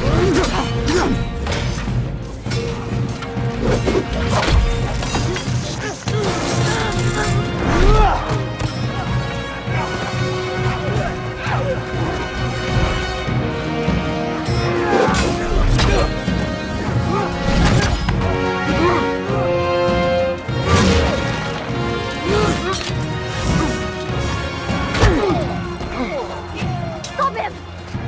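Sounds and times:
orchestral score: 0.0s - 28.0s.

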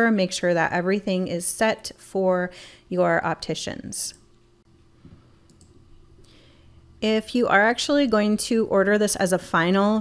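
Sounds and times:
computer mouse clicks: 5.4s - 5.8s.

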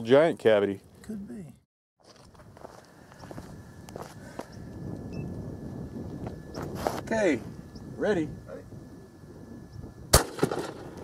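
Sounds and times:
faint steady high tone: 4.5s - 6.6s.

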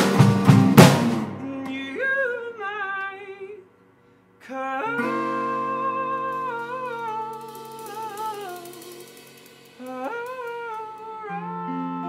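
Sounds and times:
acoustic guitar: 0.0s - 3.2s, 4.6s - 12.0s
man singing wordless vocal: 1.4s - 3.7s, 4.4s - 9.2s, 9.8s - 12.0s.

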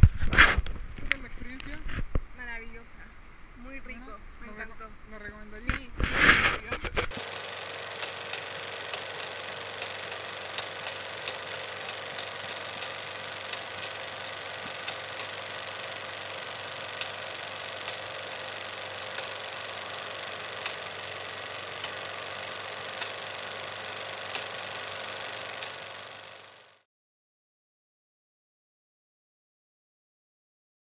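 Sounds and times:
crackling clicks: 7.0s - 26.8s.

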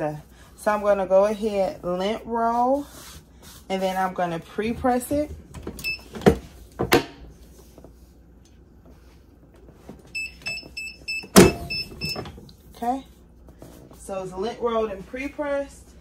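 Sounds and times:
press opening clunk: 11.2s - 12.4s.

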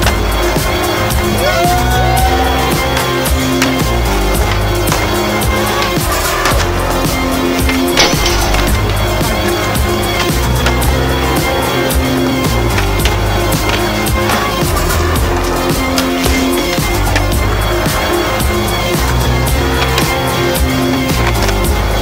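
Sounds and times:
music with beat and bass: 0.0s - 22.0s
skateboards clacking: 0.0s - 22.0s
skateboards rolling on pavement: 0.0s - 22.0s.

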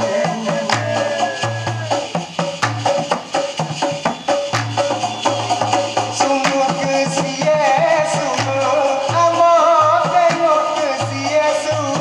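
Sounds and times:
bass line: 0.0s - 12.0s
hand percussion strikes: 0.0s - 12.0s.

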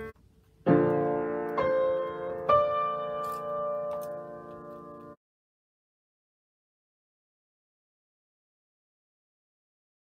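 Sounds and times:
piano chord ringing: 0.0s - 5.2s.

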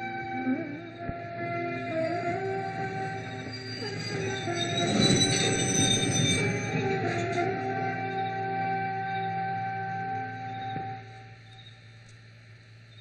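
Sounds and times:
film score music: 0.0s - 5.8s, 6.4s - 11.7s
train wheel squeal: 1.6s - 10.8s.

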